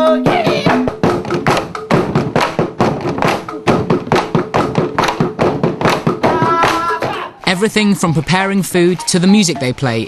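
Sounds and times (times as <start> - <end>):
drums and gongs percussion music: 0.0 - 10.0.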